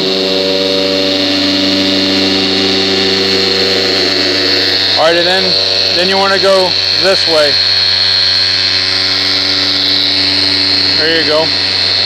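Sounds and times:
polisher motor hum with whine: 0.0 - 12.0.

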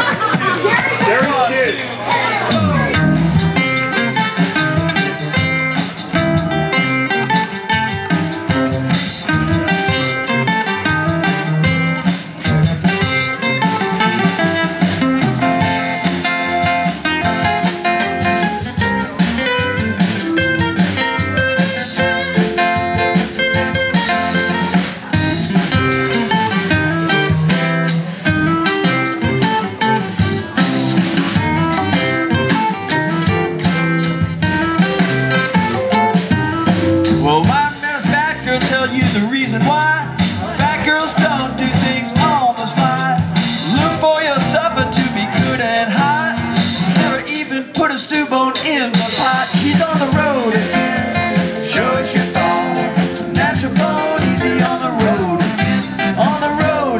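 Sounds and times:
acoustic guitars playing blues: 0.0 - 56.9.

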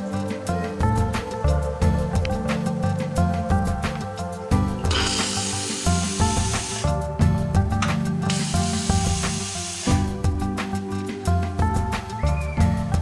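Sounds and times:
background music with steady beat: 0.0 - 13.0
espresso machine steam wand hissing: 4.9 - 7.0, 8.3 - 10.2.

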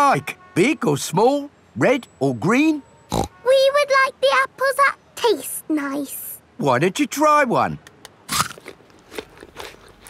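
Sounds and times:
apple bite crunch: 8.2 - 10.0
chewing crunches: 8.2 - 10.0.

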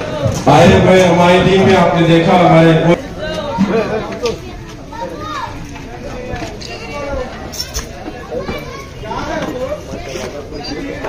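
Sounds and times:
crowd of voices talking: 0.0 - 11.0
children's voices: 3.0 - 11.0.

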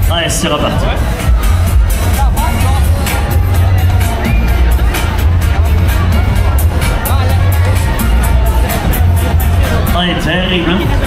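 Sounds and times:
crowd chatter: 0.0 - 11.0
loud dance music with heavy bass: 0.0 - 11.0.

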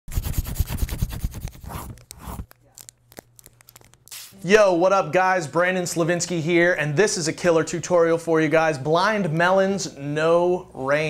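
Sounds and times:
pencil scribbling on paper: 0.1 - 2.4.

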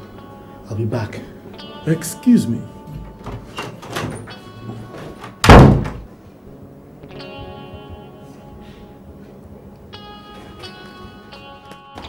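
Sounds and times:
door slamming: 3.2 - 4.4, 5.2 - 6.1.

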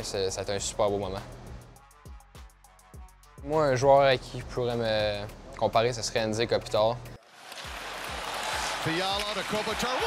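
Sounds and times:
hockey arena crowd noise: 7.2 - 10.0.

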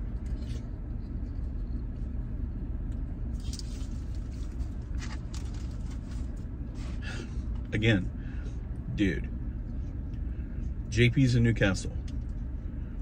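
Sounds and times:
vehicle engine idling: 0.0 - 13.0.

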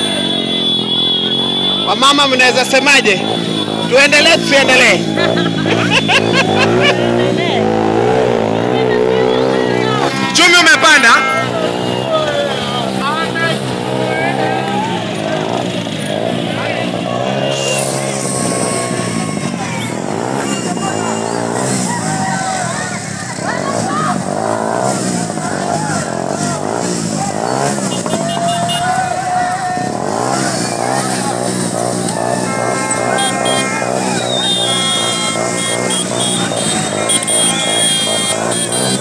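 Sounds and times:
crowd shouting: 0.0 - 39.0
motorcycle engines running: 0.0 - 39.0.

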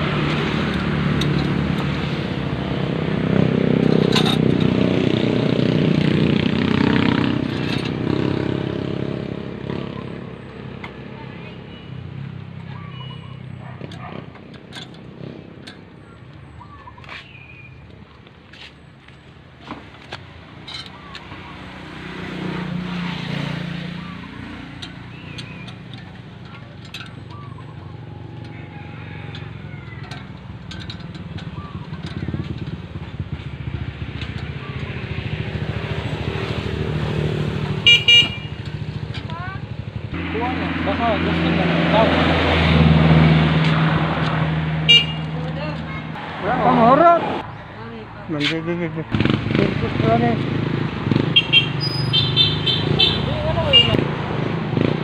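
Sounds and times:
motorcycle engines passing: 0.0 - 55.0
tool handling clicks: 24.7 - 27.4, 30.0 - 32.7
vehicle horn beeps: 37.8 - 38.7, 44.9 - 45.3, 51.4 - 54.0.

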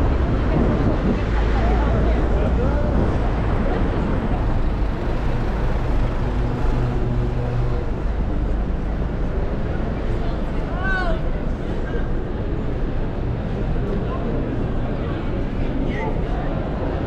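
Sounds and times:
vehicle engine humming close by: 0.0 - 10.7
bus and cars passing: 0.0 - 17.0
passers-by talking: 0.0 - 17.0.

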